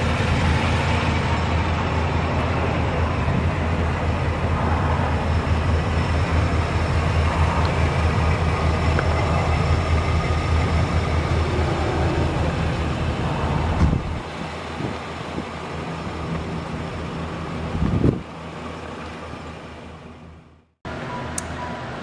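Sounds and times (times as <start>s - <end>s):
car engine idling: 0.0s - 21.5s.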